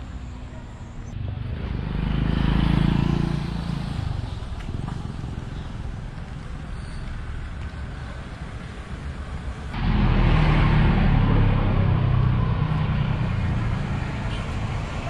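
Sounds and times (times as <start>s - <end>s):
street traffic: 0.0s - 15.0s
low engine drone: 9.7s - 14.0s.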